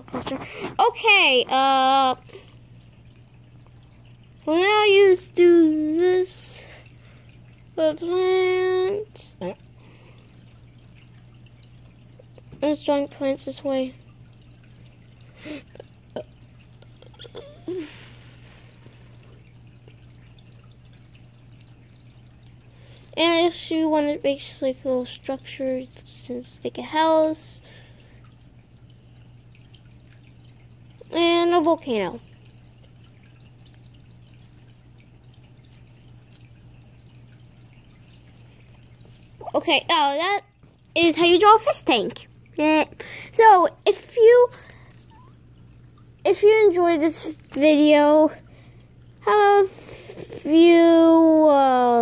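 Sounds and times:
faint low hum: 0.0 - 52.0
water dripping: 0.0 - 52.0.

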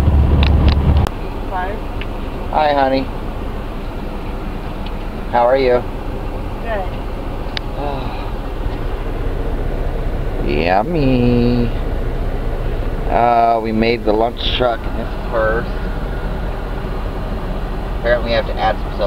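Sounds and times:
diesel engine rumble: 0.0 - 19.0.

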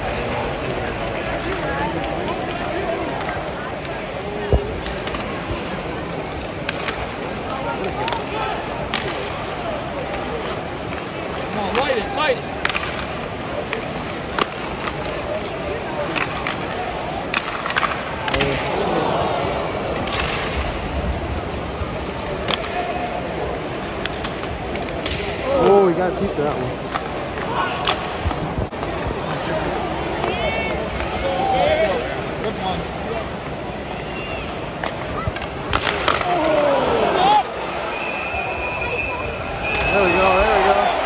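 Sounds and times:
fans shouting: 0.0 - 14.3, 15.0 - 23.8, 27.3 - 41.0
hockey sticks clacking on puck: 0.0 - 18.7, 19.9 - 20.6, 22.2 - 23.0, 23.6 - 32.6, 34.6 - 37.5
murmur of arena crowd: 0.0 - 41.0
puck hitting boards: 6.6 - 9.3, 12.6 - 18.7, 34.8 - 37.5.

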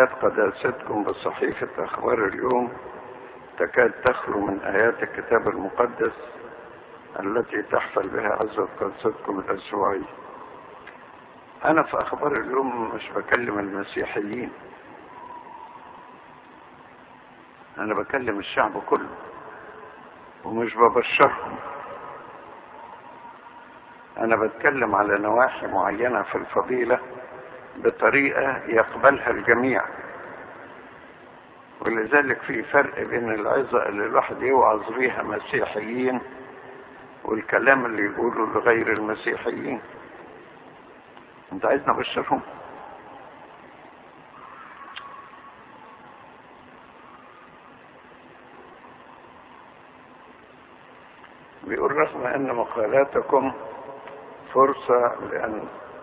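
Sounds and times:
faint low hum: 0.0 - 56.0
low background hiss: 0.0 - 56.0.

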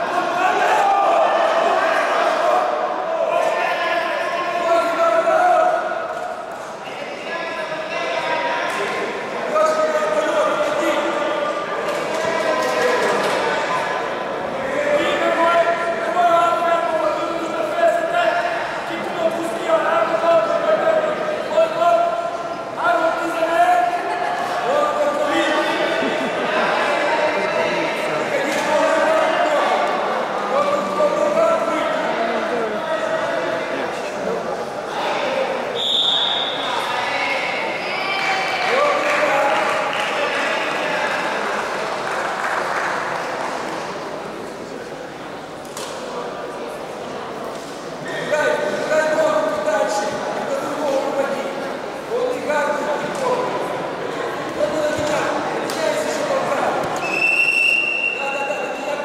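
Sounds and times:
people shouting in an echoing hall: 0.0 - 44.4.

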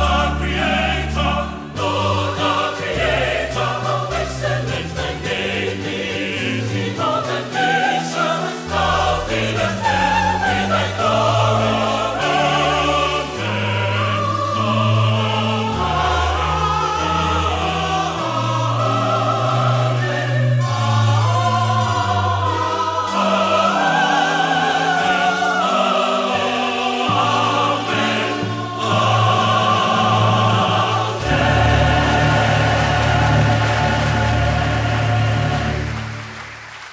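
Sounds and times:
mixed choir singing: 0.0 - 36.6
keyboard accompaniment: 0.0 - 36.8.

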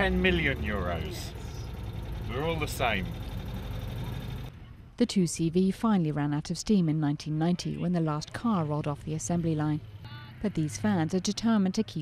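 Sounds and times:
car engine running: 0.0 - 4.5
road noise: 0.0 - 5.0, 8.4 - 12.0.

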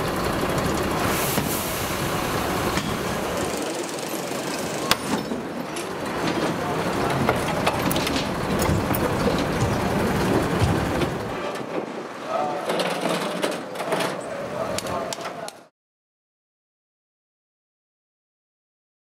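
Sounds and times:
vehicle engine running: 0.0 - 11.3.

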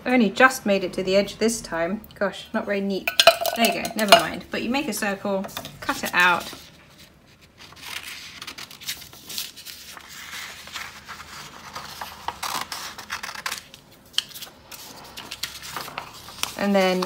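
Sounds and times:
paper rustling: 5.6 - 17.0.

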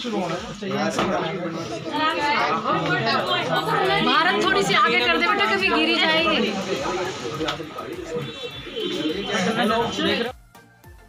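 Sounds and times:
people chattering: 0.0 - 10.3.

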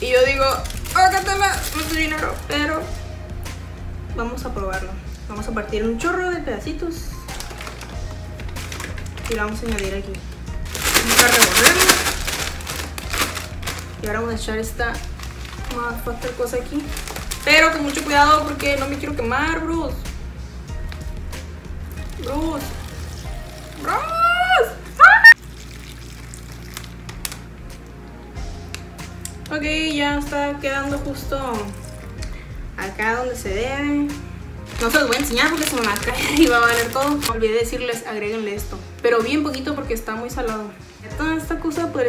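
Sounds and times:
background music with steady bass: 0.0 - 42.0
person shouting excitedly: 23.8 - 25.4
water pouring trickle: 25.4 - 27.3.

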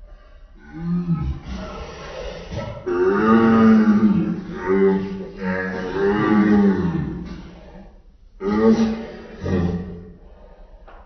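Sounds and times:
man groaning in pain: 2.9 - 7.4.

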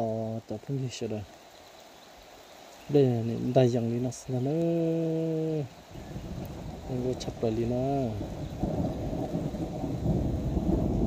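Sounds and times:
low rumble of thunder: 5.9 - 11.0.

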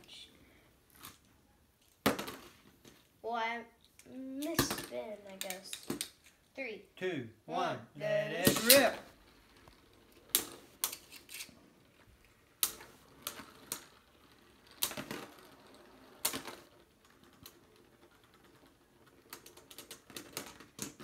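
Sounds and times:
spinning tops clacking together: 8.2 - 11.6, 12.4 - 21.0.

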